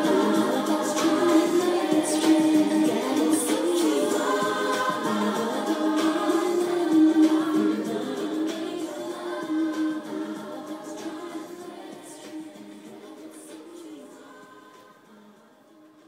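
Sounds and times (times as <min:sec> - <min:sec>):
voices singing slow song: 0:00.0 - 0:16.0.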